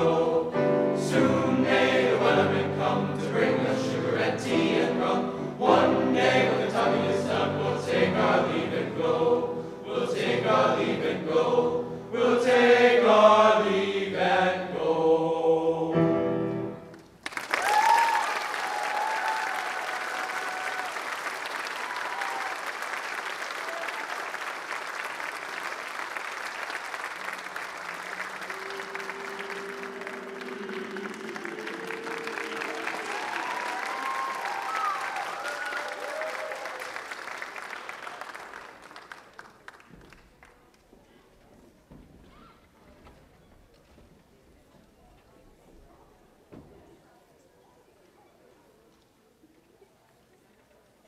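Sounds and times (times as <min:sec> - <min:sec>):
men's choir singing: 0:00.0 - 0:16.7, 0:28.4 - 0:33.7
audience applause: 0:16.9 - 0:40.8
shouts and cheers: 0:17.6 - 0:22.8, 0:31.7 - 0:37.0.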